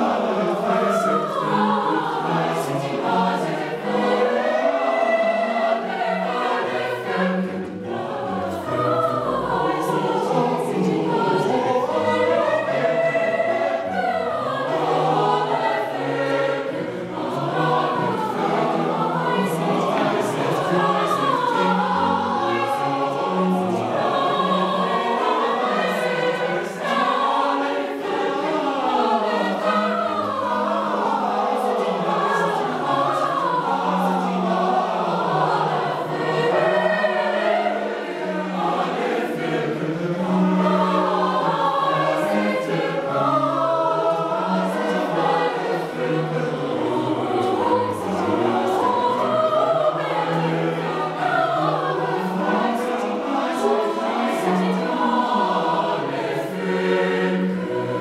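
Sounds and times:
cello: 0:00.0 - 0:58.0
mixed choir singing: 0:00.0 - 0:58.0.

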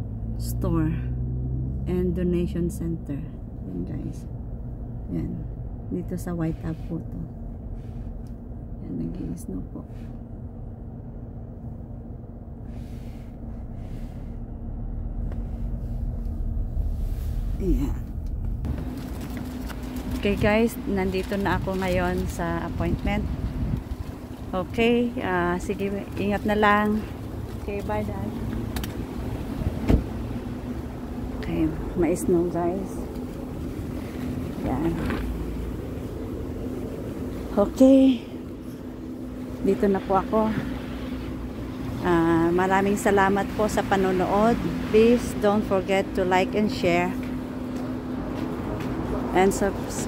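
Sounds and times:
car rumble from inside cabin: 0:00.0 - 0:50.0.

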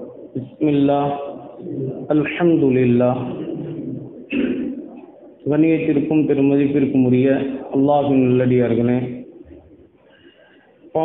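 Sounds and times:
man reciting: 0:00.0 - 0:09.3.

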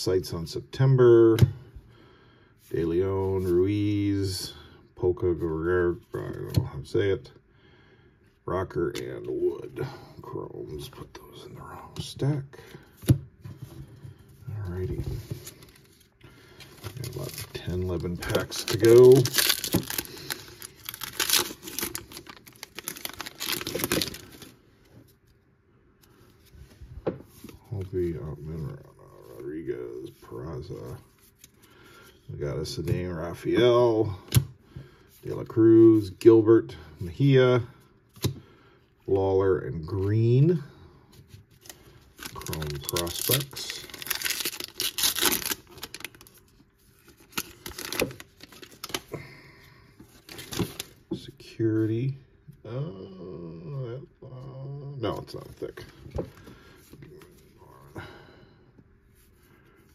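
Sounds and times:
plastic wrapper tearing and crinkling: 0:16.7 - 0:24.6, 0:41.6 - 0:46.4, 0:47.0 - 0:49.2.

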